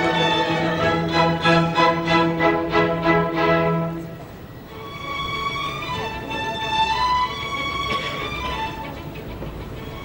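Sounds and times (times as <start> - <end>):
classical string orchestra music: 0.0 - 10.0.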